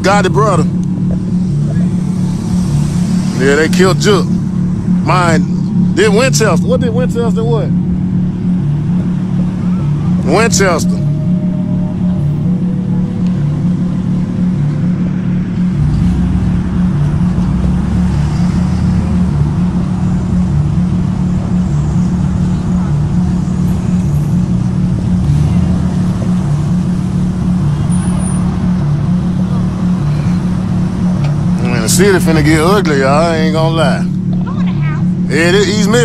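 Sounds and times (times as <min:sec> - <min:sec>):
deep rumble: 0:00.0 - 0:36.0
engine hum: 0:00.0 - 0:36.0.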